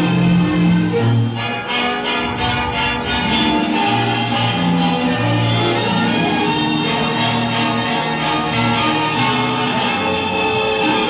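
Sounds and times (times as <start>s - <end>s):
live band music: 0.0s - 11.0s
low bass note: 2.1s - 6.0s.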